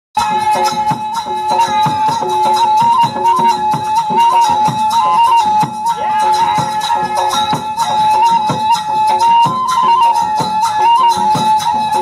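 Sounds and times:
even drum beat: 0:00.2 - 0:12.0
jingling percussion: 0:00.2 - 0:12.0
wind instrument melody: 0:00.2 - 0:12.0.

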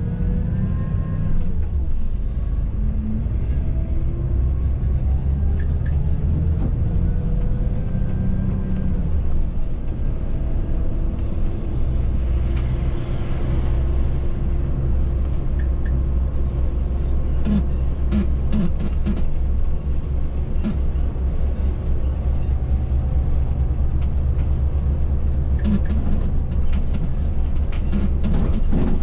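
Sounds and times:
coach diesel engine rumble: 0:00.0 - 0:29.0.

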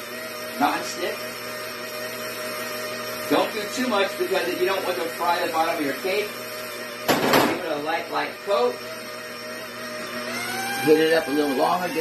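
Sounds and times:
stand mixer whisking batter: 0:00.0 - 0:12.0.

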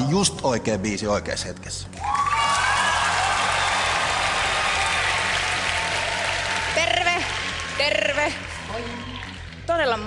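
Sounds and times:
audience applauding: 0:02.0 - 0:09.8.

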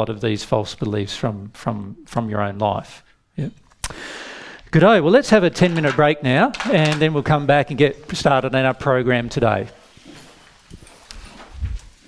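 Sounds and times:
chairs shifting: 0:05.5 - 0:07.3
footsteps: 0:09.7 - 0:12.0.

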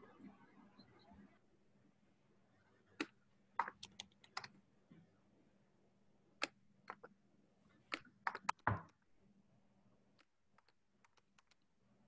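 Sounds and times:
faint keyboard typing: 0:03.0 - 0:04.6, 0:06.4 - 0:07.2, 0:07.8 - 0:09.0, 0:10.1 - 0:11.7.

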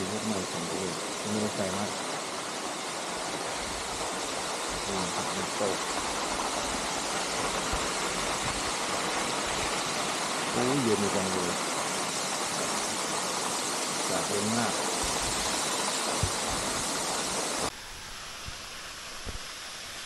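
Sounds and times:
waterfall rushing: 0:00.0 - 0:20.0.

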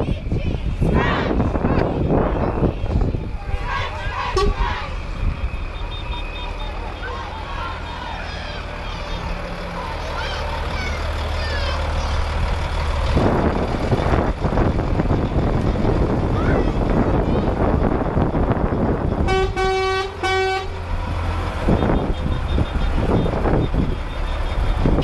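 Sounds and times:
crowd voices: 0:00.0 - 0:25.0
lorry diesel engine running: 0:00.0 - 0:25.0.

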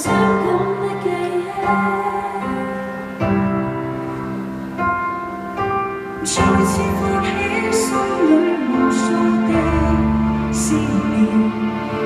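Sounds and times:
piano sustained chords: 0:00.0 - 0:12.0.

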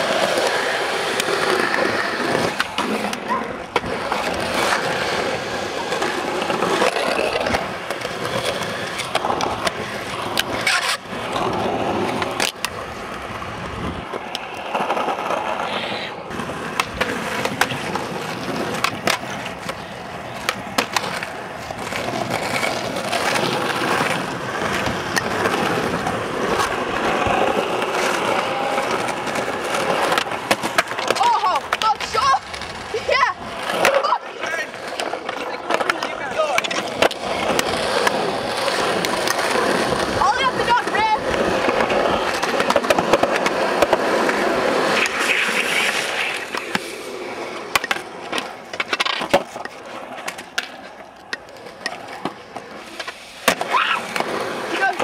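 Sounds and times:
skateboard wheels rolling on asphalt: 0:00.0 - 0:55.0.

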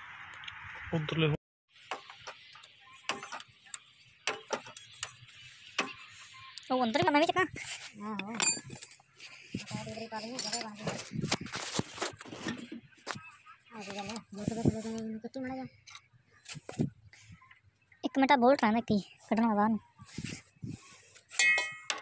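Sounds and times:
people talking and calling: 0:01.0 - 0:22.0
hand tools clinking on metal: 0:03.1 - 0:05.2, 0:08.2 - 0:09.0, 0:10.2 - 0:10.9, 0:21.3 - 0:22.0.

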